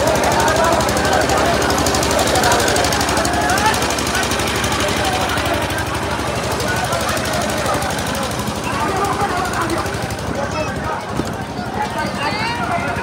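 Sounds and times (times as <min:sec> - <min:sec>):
crowd shouting: 0:00.0 - 0:13.0
fast drum rolls: 0:00.0 - 0:13.0.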